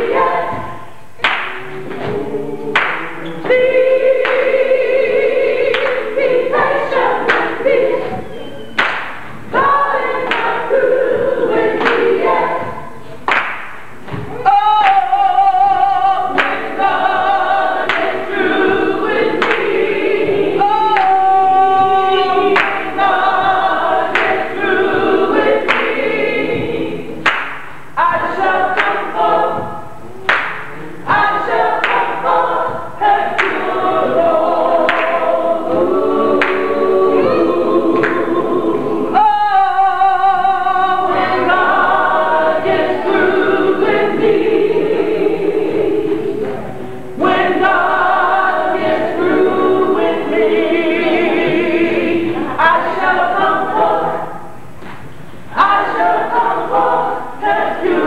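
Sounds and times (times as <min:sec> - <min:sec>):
congregation singing along: 0:00.0 - 0:58.0.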